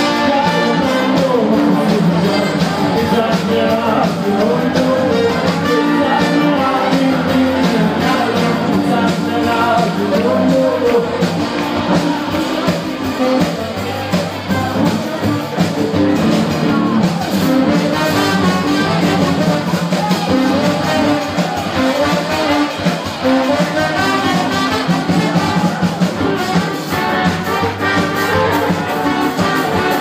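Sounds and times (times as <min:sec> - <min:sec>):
live band music with steady beat: 0:00.0 - 0:30.0.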